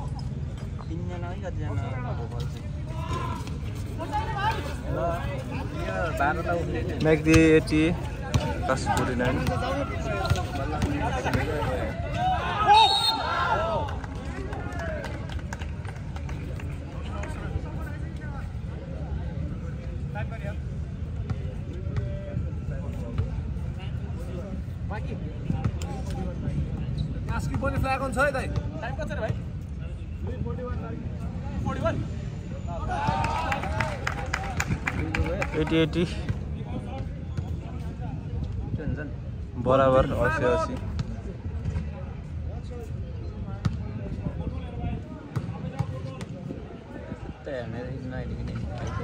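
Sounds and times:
people talking and calling out: 0.0s - 49.0s.

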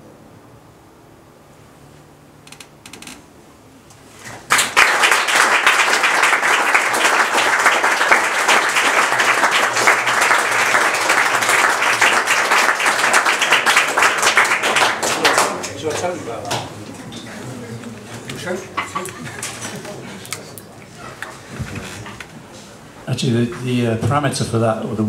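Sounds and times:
audience applauding: 4.4s - 21.4s.

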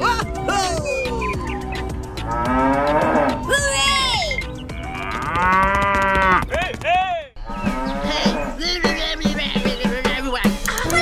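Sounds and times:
background music with steady beat: 0.0s - 11.0s
cow mooing: 2.2s - 3.5s, 4.9s - 6.4s, 7.5s - 8.6s.

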